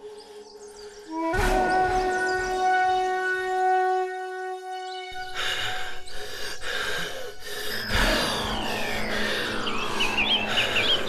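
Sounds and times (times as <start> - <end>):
quiet held drone: 0.0 - 11.0
loud held horn-like note: 1.1 - 5.0.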